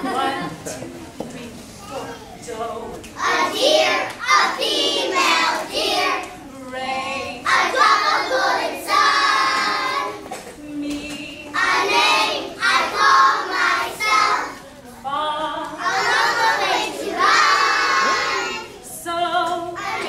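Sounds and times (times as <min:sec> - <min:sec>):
children singing: 0:02.4 - 0:14.7, 0:15.6 - 0:20.0.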